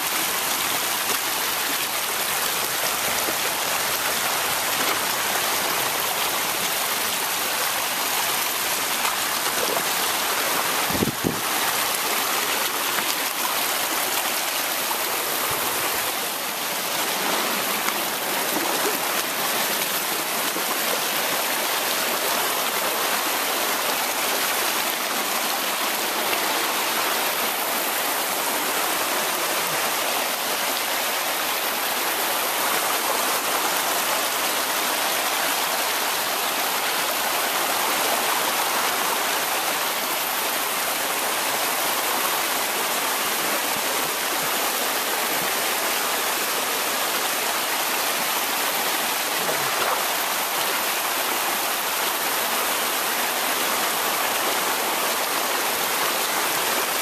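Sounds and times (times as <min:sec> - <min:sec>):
floodwater rushing over stones: 0:00.0 - 0:57.0.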